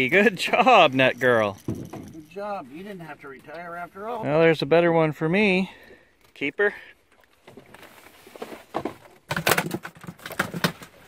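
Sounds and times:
knocks and rattles in metal boat: 1.4 - 2.4.

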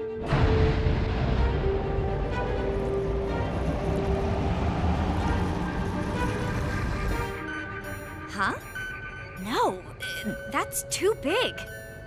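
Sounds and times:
underwater rushing rumble: 0.2 - 7.1.

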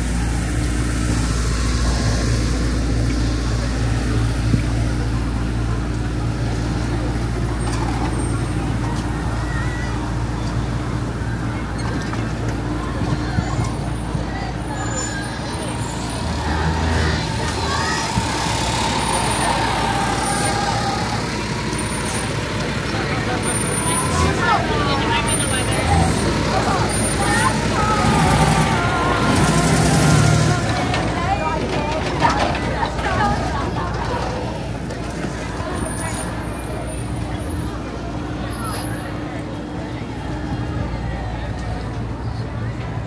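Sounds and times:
large vehicle engine hum: 0.0 - 43.0
motor traffic: 0.0 - 43.0
pedestrian voices: 0.0 - 43.0.

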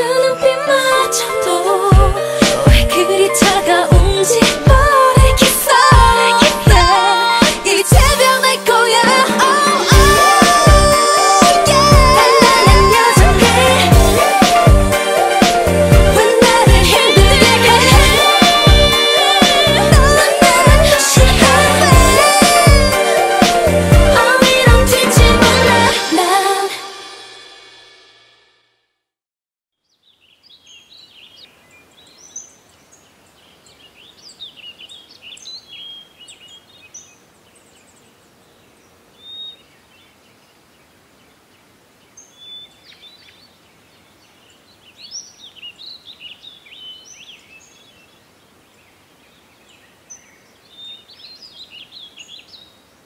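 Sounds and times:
pop song: 0.0 - 27.7
small birds chirping: 29.8 - 53.0
soft steady hiss: 29.8 - 53.0.

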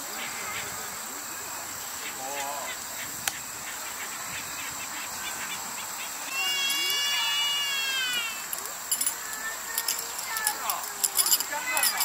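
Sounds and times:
long call falling in pitch: 6.3 - 8.6
metal tent pegs clinking: 8.1 - 12.0.

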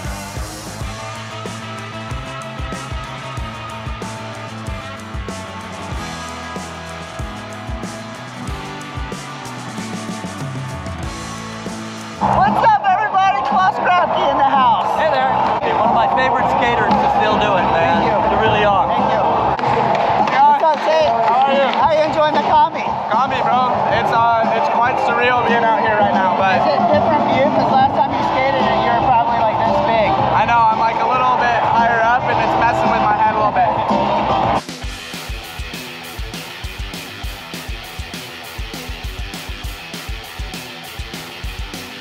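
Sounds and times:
music: 0.0 - 42.0
crowd chatter: 9.5 - 34.6
two men talking: 12.4 - 19.5, 20.1 - 34.3.

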